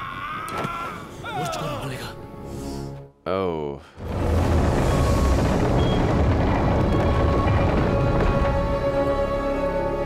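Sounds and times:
dramatic music: 3.9 - 10.0
dense low rumbling noise: 4.0 - 9.4.

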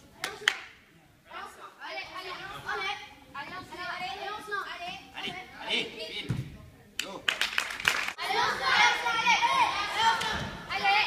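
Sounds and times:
voices talking in a hall: 0.0 - 11.0
sharp hand claps: 0.2 - 0.8, 7.0 - 8.2.

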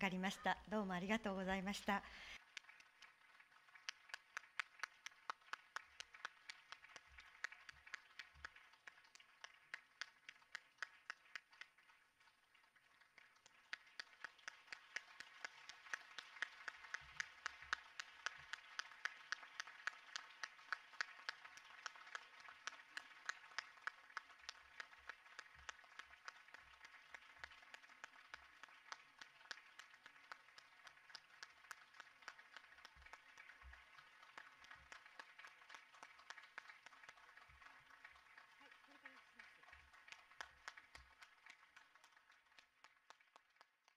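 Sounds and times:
audience applauding: 0.0 - 43.9.

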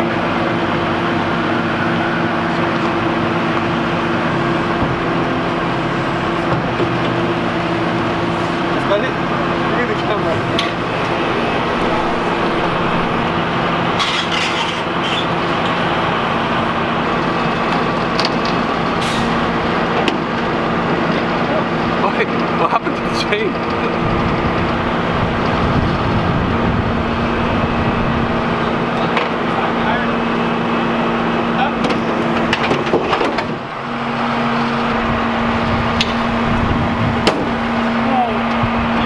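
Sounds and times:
engine idling: 0.0 - 39.0.

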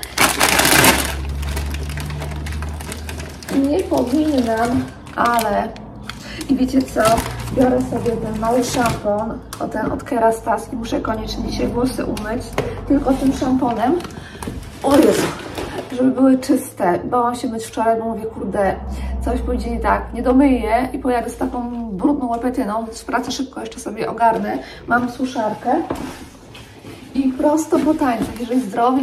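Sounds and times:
plastic packet crinkling: 0.0 - 10.0, 11.8 - 16.0
low steady hum: 0.0 - 28.9.

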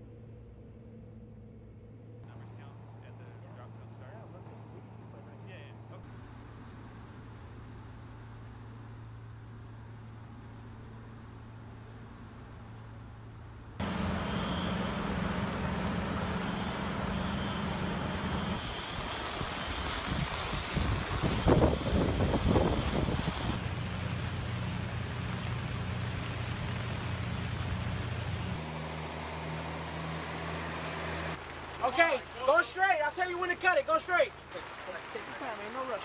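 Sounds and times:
aircraft engine drone: 0.0 - 32.0
low engine hum: 0.0 - 32.5
heavy truck engine running: 13.8 - 20.0
loud rush of noise: 13.8 - 23.8
wind buffeting microphone: 18.6 - 23.6.

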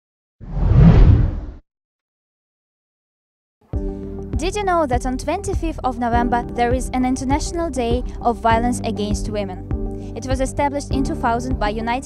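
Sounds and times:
deep whoosh: 0.4 - 1.6.

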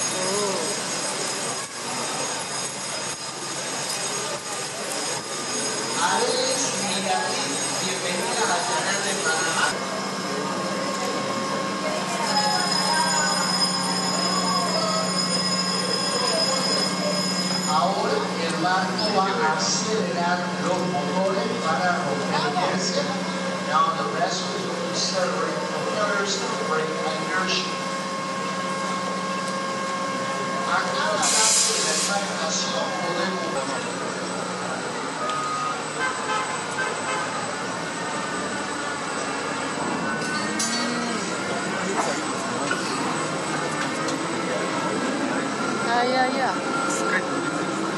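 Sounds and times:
electric locomotive hum: 0.0 - 47.9
thin high whine: 0.0 - 47.9.

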